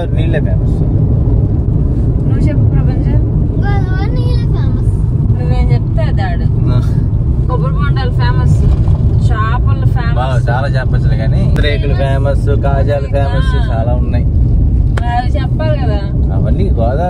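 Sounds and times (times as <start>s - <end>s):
car cabin road rumble: 0.0s - 17.0s.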